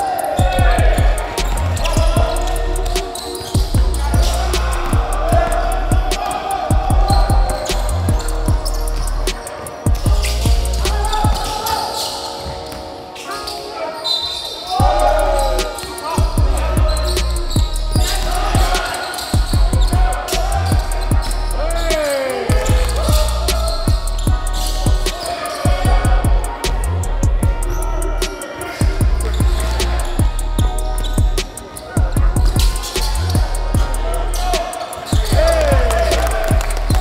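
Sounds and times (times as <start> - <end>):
players shouting: 0.0 - 12.7, 13.4 - 37.0
music: 0.0 - 37.0
sneakers squealing on floor: 0.0 - 37.0.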